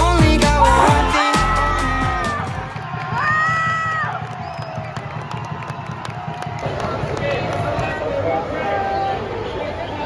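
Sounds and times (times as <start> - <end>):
background pop music: 0.0 - 3.2
crowd cheering and shouting: 0.3 - 9.3.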